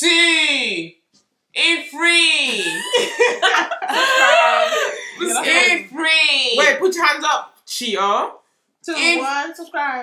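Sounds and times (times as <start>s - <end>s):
young women laughing loudly: 2.6s - 5.4s.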